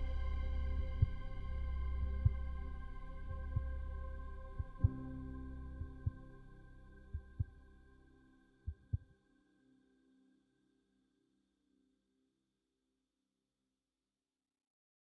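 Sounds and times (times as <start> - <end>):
soft held music chord: 0.0 - 8.7
heartbeat thumps: 2.0 - 2.5, 3.3 - 3.8, 4.6 - 5.2, 5.8 - 6.3, 7.1 - 7.6, 8.7 - 9.1.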